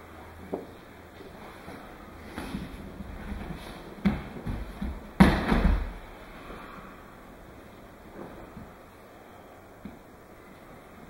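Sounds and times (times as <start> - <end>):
bare feet on padded mats: 0.5 - 6.8.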